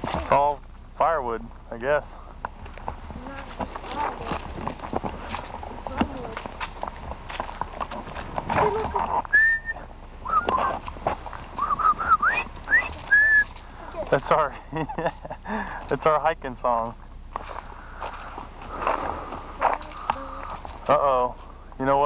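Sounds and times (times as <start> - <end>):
footsteps crunching on gravel: 2.2 - 14.5, 16.7 - 22.0
person whistling a tune: 9.3 - 10.8, 11.6 - 13.5.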